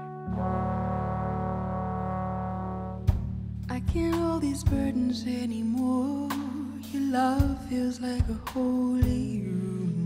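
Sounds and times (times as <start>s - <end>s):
low brass chord: 0.0s - 3.7s
big band brass chords: 0.0s - 4.8s.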